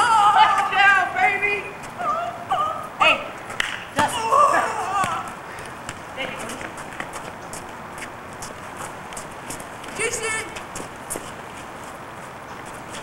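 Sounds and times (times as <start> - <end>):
background hiss: 0.0 - 13.0
footsteps running on pavement: 5.6 - 13.0.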